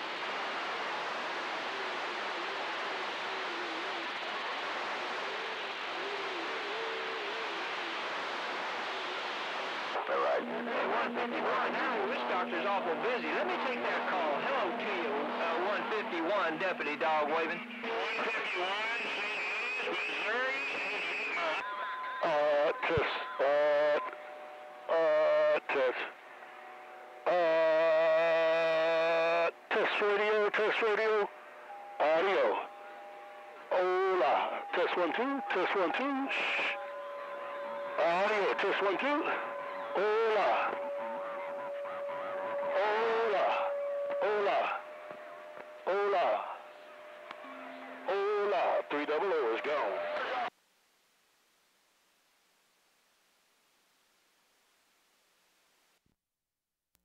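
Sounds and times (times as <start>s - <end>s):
radio static hiss: 0.0s - 56.0s
distorted radio voice: 9.9s - 21.6s, 22.2s - 24.2s, 24.9s - 26.2s, 33.7s - 36.9s, 38.0s - 45.2s, 45.8s - 46.7s, 48.1s - 50.5s
radio whistles and carrier tones: 17.0s - 21.8s, 33.7s - 50.5s.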